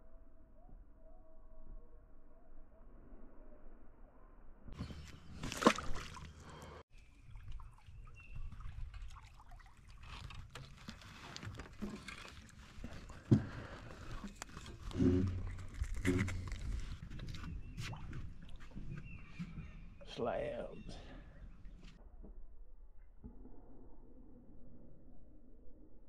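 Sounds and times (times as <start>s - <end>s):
water sloshing and dribbling: 4.7s - 20.1s.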